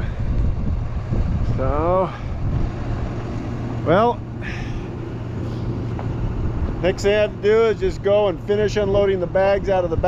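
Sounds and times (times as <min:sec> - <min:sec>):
excavator diesel engine idling: 0:03.1 - 0:10.0.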